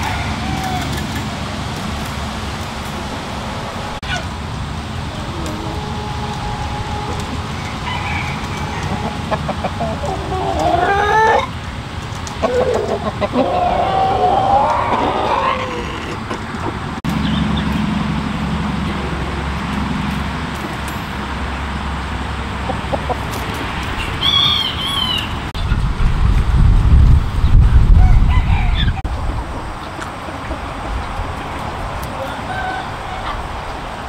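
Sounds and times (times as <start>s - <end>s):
rooster crowing: 0.0s - 1.4s, 5.1s - 11.5s, 27.9s - 29.0s, 32.1s - 33.4s
hens clucking: 2.6s - 17.8s, 22.5s - 25.8s, 28.3s - 34.0s.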